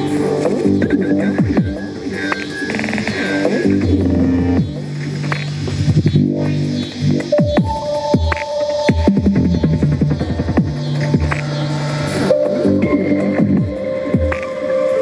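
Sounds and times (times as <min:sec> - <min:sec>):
bass-heavy electronic dance music: 0:00.0 - 0:15.0.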